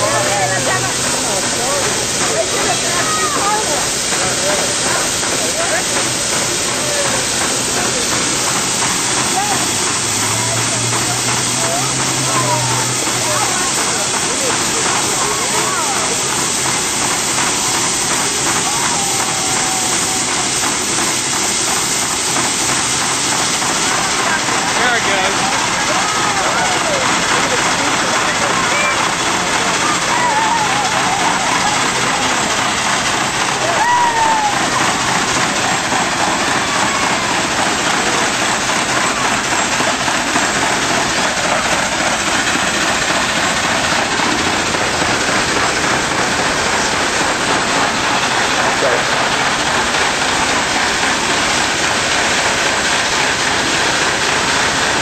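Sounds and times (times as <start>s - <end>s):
steam hissing: 0.0s - 55.0s.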